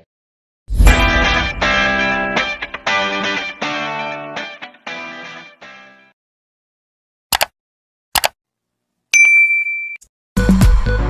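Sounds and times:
double mouse click: 0:07.3 - 0:07.5, 0:08.2 - 0:08.4
bright bell ding: 0:09.2 - 0:10.1.

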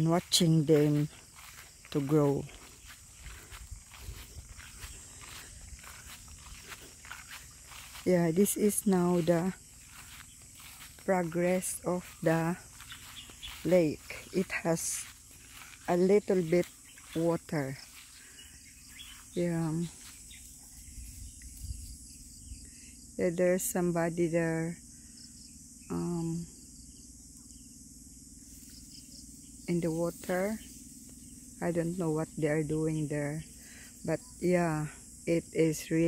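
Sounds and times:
footsteps through grass: 0:00.0 - 0:22.4
insects chirring: 0:00.0 - 0:36.0
wind rumble on microphone: 0:03.1 - 0:06.6, 0:20.8 - 0:22.6.

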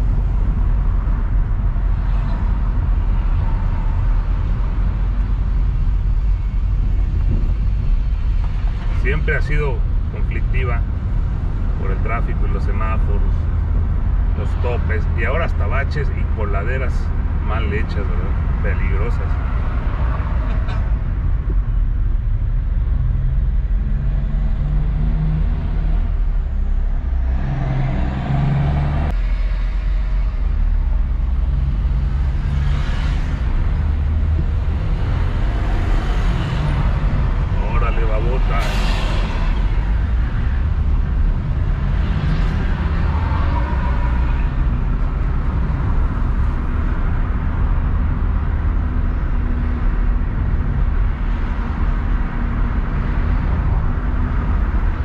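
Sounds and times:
car engine and tyre hum: 0:00.0 - 0:55.0
vehicle passing: 0:22.9 - 0:50.0.

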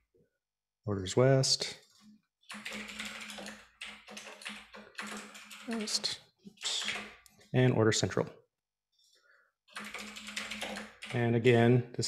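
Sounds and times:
typing on computer keyboard: 0:02.5 - 0:06.0, 0:06.6 - 0:07.2, 0:09.7 - 0:11.4.

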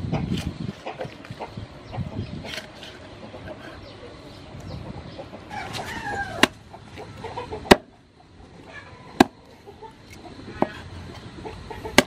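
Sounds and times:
bird calling: 0:00.8 - 0:12.0
cleaver chopping on wooden block: 0:07.7 - 0:07.9, 0:09.2 - 0:09.4.

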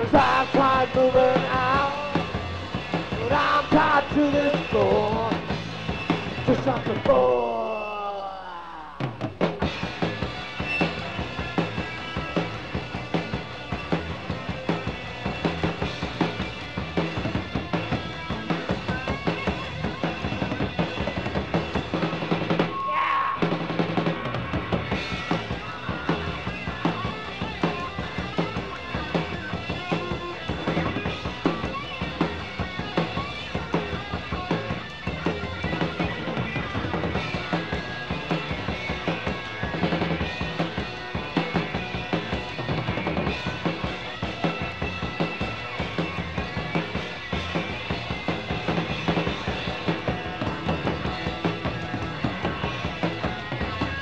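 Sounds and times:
drum kit pounding quick beat: 0:00.0 - 0:07.5, 0:09.0 - 0:54.0
live rock band playing: 0:00.0 - 0:08.1, 0:09.0 - 0:54.0.

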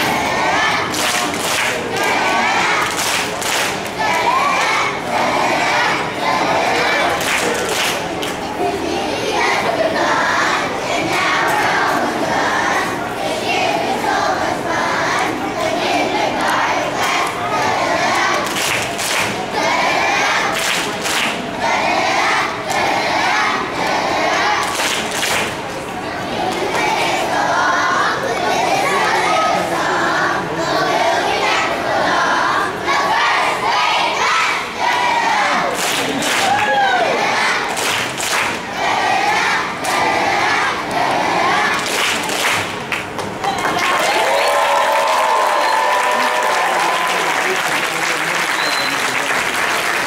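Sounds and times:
young children shouting and cheering: 0:36.4 - 0:37.5, 0:43.6 - 0:47.4.

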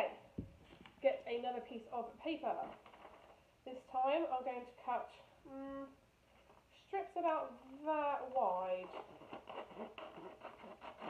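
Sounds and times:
paper rustling: 0:02.5 - 0:03.4.

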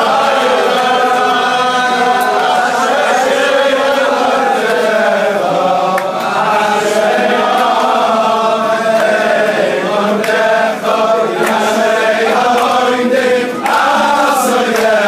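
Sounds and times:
men singing in unison: 0:00.0 - 0:15.0.

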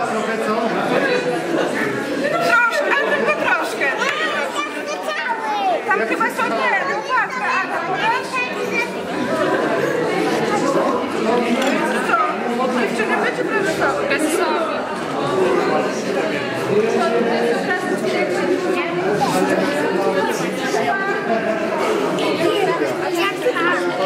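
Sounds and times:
crowd chattering: 0:00.0 - 0:24.0.

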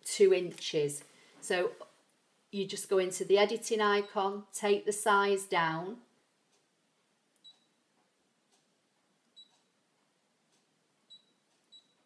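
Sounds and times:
faint high touchscreen beeps: 0:04.0 - 0:04.3, 0:07.4 - 0:07.8, 0:09.3 - 0:09.8, 0:11.1 - 0:12.0.

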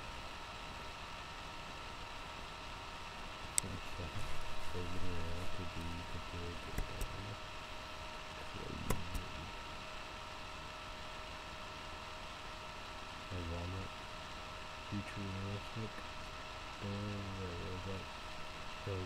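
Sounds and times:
steady hum and hiss: 0:00.0 - 0:19.0
man speaking in low phrases: 0:03.6 - 0:07.4, 0:08.3 - 0:09.6, 0:13.3 - 0:13.9, 0:14.9 - 0:16.1, 0:16.8 - 0:18.1
sharp click: 0:06.7 - 0:07.2, 0:08.8 - 0:09.3.

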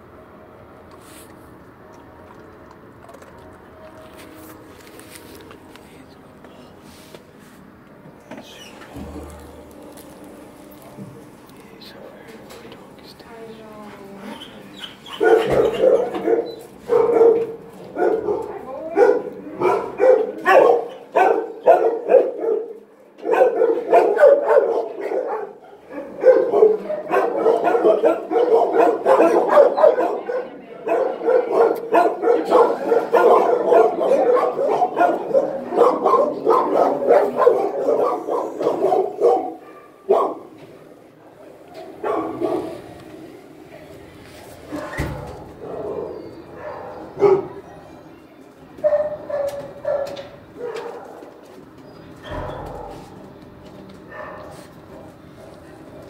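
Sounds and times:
dogs barking: 0:14.7 - 0:40.6, 0:41.8 - 0:43.0, 0:44.7 - 0:47.9, 0:48.8 - 0:51.4, 0:54.0 - 0:56.0.

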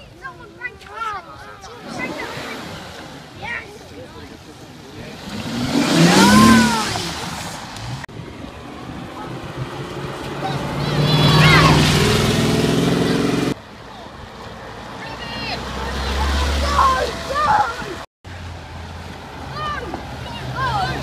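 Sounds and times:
car engines accelerating: 0:01.4 - 0:21.0
sports car engine: 0:01.7 - 0:13.6
child calling out: 0:06.2 - 0:07.0, 0:10.5 - 0:11.8, 0:16.6 - 0:18.0, 0:19.5 - 0:21.0.

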